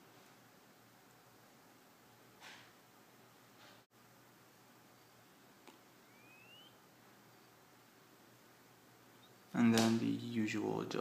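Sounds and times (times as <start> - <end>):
faint room hiss: 0.0 - 11.0
short rising whistle: 6.1 - 6.8.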